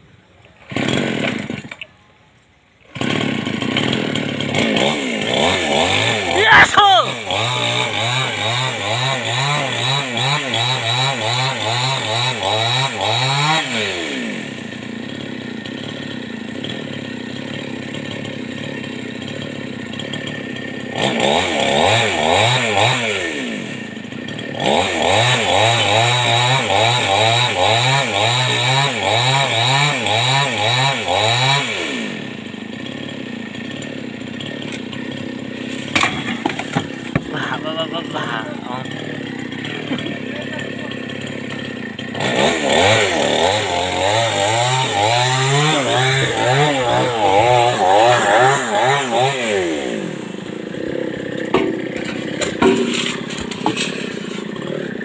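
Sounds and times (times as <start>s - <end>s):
chainsaw cutting wood: 0.5s - 2.0s, 2.8s - 55.0s.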